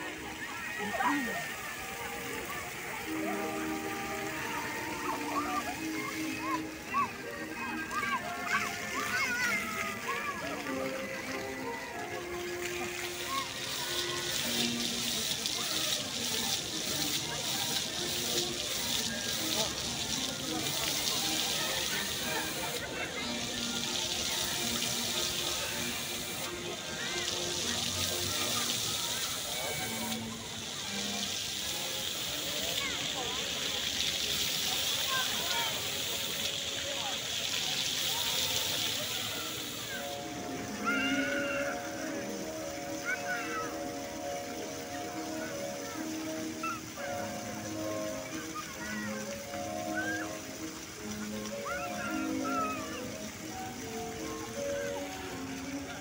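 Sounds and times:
faint crowd voices: 0:00.0 - 0:56.0
faint music: 0:00.0 - 0:56.0
fountain jets splashing on paving: 0:00.0 - 0:56.0.

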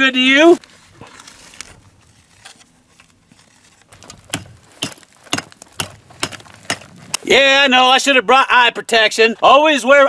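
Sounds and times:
rock hammer striking rock: 0:04.0 - 0:06.9.

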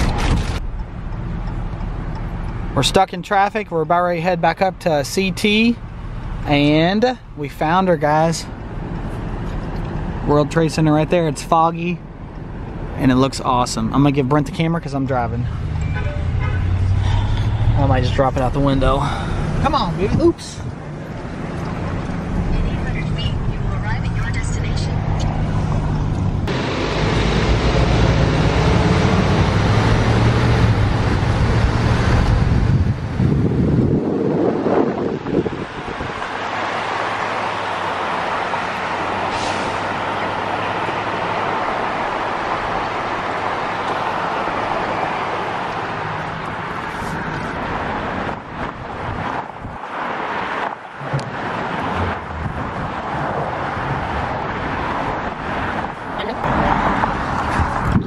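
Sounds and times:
truck engine and road rumble: 0:00.0 - 0:58.0
wind and tyre noise: 0:00.0 - 0:58.0.

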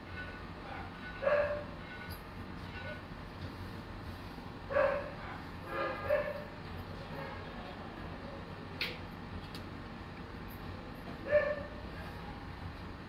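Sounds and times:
dog barking: 0:00.7 - 0:01.7, 0:04.7 - 0:06.5, 0:11.3 - 0:11.8.

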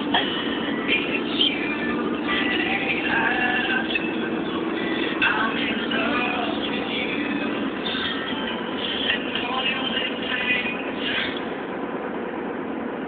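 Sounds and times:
car cabin road noise: 0:00.0 - 0:13.0.

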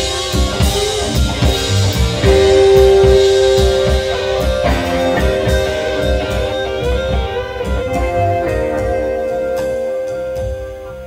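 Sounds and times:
electric guitar: 0:00.0 - 0:11.0
live band playing: 0:00.0 - 0:11.0.

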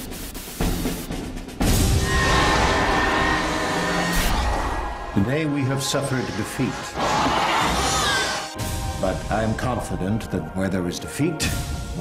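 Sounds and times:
trailer music: 0:00.6 - 0:12.0.

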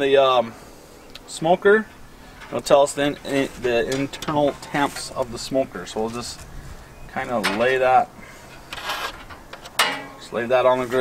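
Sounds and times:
soft handling rustle: 0:01.9 - 0:09.5.

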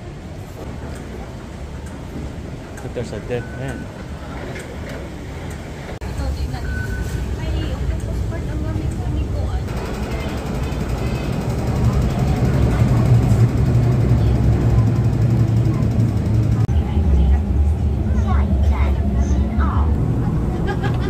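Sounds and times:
metro train arriving rumble: 0:00.0 - 0:21.0
train running rumble: 0:00.0 - 0:21.0.

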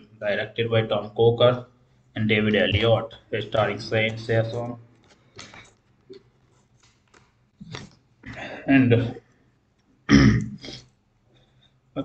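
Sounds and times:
man clearing throat: 0:10.1 - 0:10.8.

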